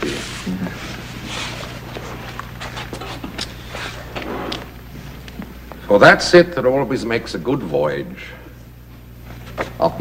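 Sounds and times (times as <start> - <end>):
people shuffling on hard floor: 0.0 - 5.9, 8.9 - 10.0
low electrical hum: 0.0 - 10.0.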